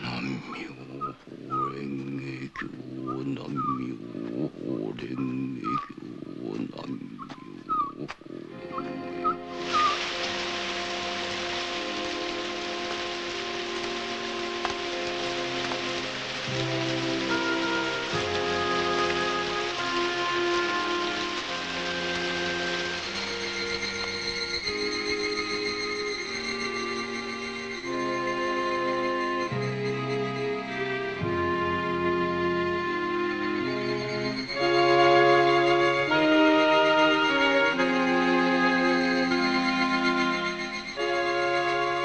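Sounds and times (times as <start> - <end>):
heavy rain: 0.0 - 42.0
slow sad film music: 0.0 - 42.0.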